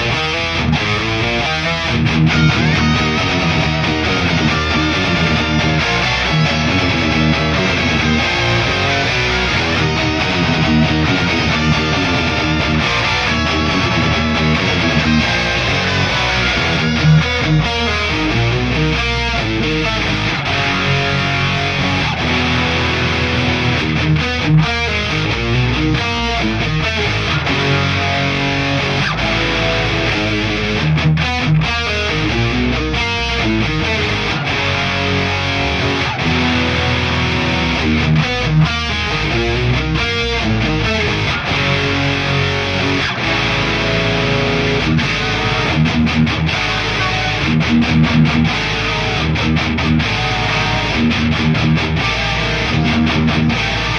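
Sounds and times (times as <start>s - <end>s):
distorted electric guitar riffing: 0.0s - 53.9s.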